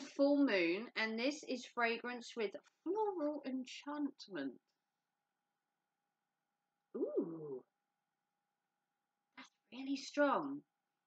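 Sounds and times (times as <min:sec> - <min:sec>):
woman humming hmm: 0:07.0 - 0:07.6.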